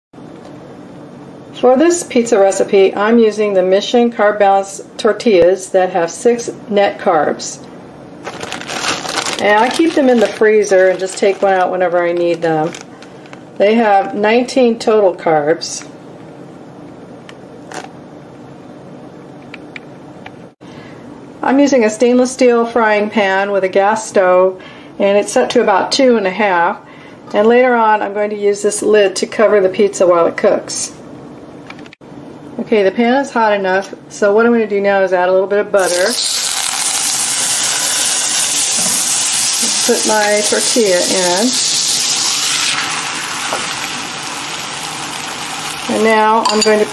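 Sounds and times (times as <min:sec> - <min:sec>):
low background hum: 0:00.2 - 0:46.9
plastic package crinkling: 0:08.2 - 0:13.4, 0:17.6 - 0:17.9
butter sizzling in a frying pan: 0:35.8 - 0:46.9.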